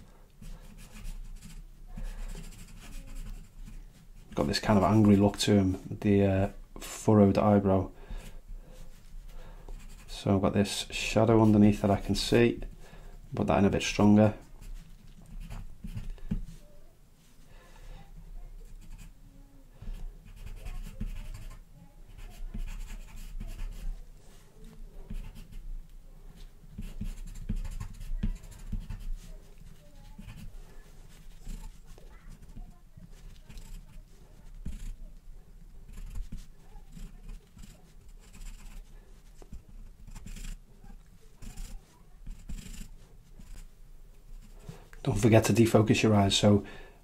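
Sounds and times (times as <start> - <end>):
charcoal pencil scratching on paper: 0.4 - 5.5, 8.2 - 10.3, 13.8 - 16.7, 18.0 - 19.2, 19.8 - 25.7, 26.4 - 44.9.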